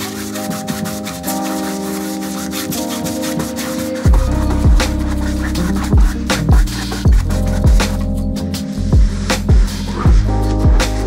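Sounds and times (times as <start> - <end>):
background music of held chords: 0.0 - 11.0
paintbrush scrubbing canvas: 0.0 - 11.0.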